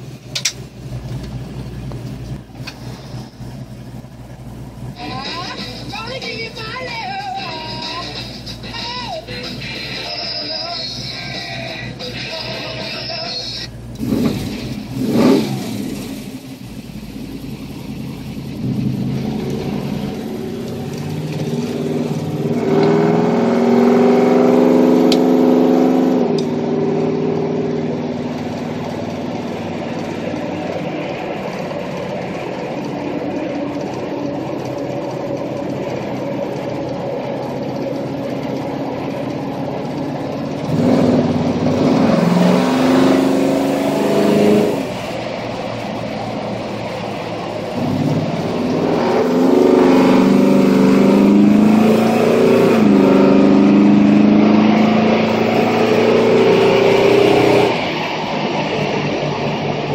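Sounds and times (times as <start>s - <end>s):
car engine revving and accelerating: 0.0s - 59.9s.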